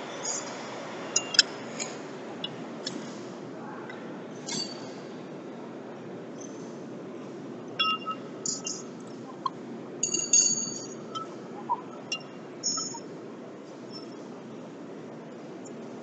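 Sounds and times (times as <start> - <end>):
steady background noise: 0.0 - 16.0
metal clinks and pings: 1.2 - 1.5, 4.5 - 4.8, 7.8 - 8.9, 10.0 - 11.3, 12.1 - 13.1.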